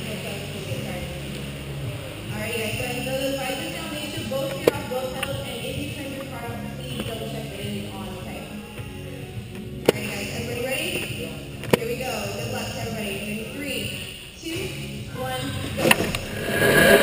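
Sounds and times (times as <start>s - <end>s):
background music: 0.0s - 17.0s
indistinct voices echoing: 16.2s - 17.0s.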